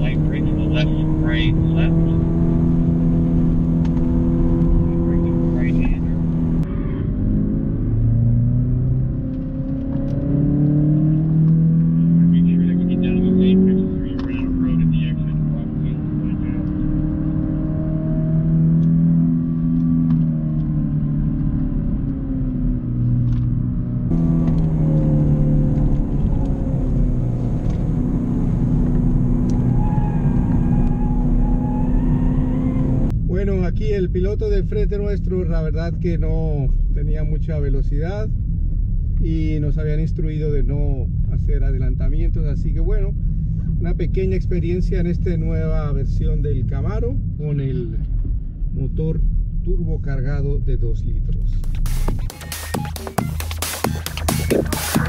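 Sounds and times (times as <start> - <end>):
car engine accelerating: 0.0 - 33.2, 51.3 - 55.0.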